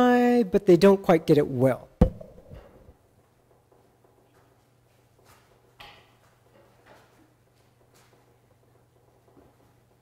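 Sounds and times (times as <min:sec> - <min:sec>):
thumps: 0:02.0 - 0:02.9.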